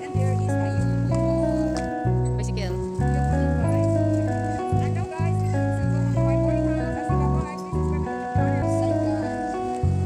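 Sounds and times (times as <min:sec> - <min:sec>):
bass and chord music: 0:00.0 - 0:10.0.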